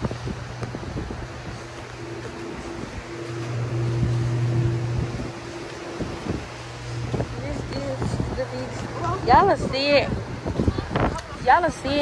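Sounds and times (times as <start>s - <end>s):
low mechanical hum: 0.0s - 12.0s
outdoor noise: 0.0s - 12.0s.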